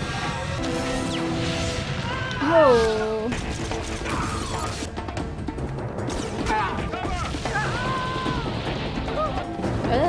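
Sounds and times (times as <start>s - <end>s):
dramatic score music: 0.0s - 10.0s.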